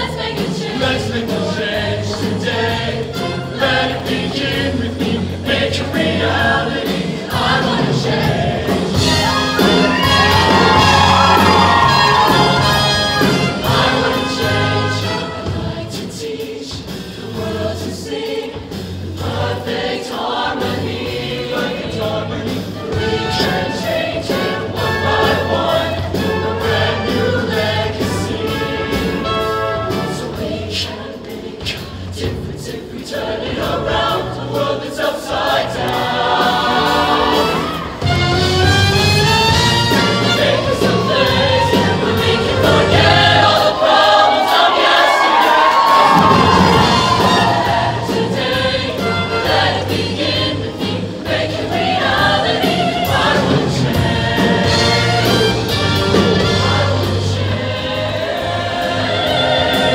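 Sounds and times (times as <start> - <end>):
choir singing in harmony: 0.0 - 59.9
live band playing: 8.1 - 15.8, 36.7 - 43.3, 52.1 - 57.2.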